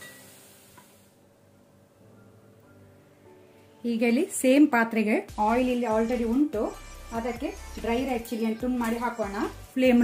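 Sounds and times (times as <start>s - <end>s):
potatoes sizzling in oil: 0.0s - 1.0s.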